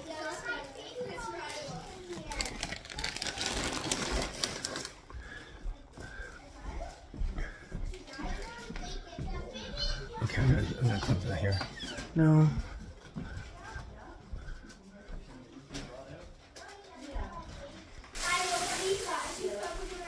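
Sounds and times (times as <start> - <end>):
adults and children chatting: 0.0 - 20.0
rustling noise: 16.5 - 20.0.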